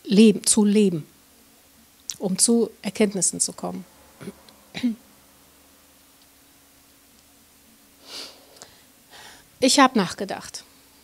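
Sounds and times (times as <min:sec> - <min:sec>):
faint steady hum: 0:00.0 - 0:11.0
woman clearing her throat: 0:04.2 - 0:05.0.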